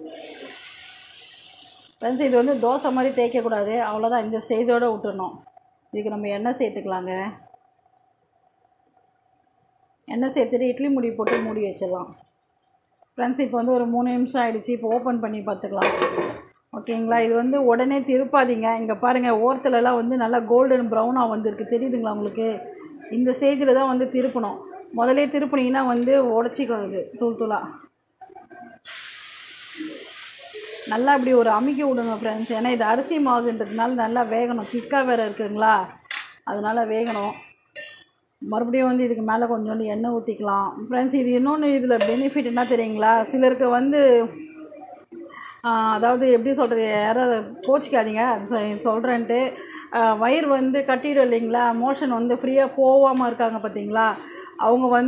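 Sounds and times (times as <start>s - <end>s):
batter sizzling on hot pan: 0.0s - 3.7s, 28.8s - 36.3s.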